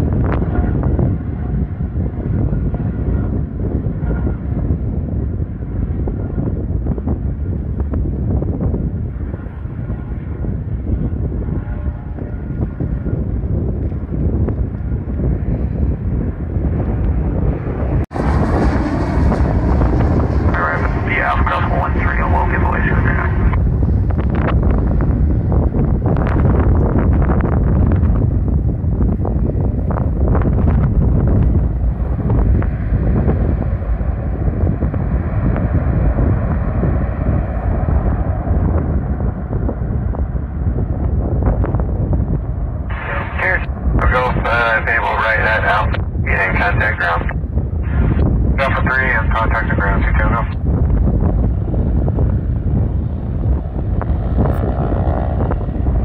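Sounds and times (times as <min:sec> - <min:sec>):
wind buffeting microphone: 0:00.0 - 0:56.0
radio voice: 0:20.5 - 0:23.6, 0:42.9 - 0:50.6.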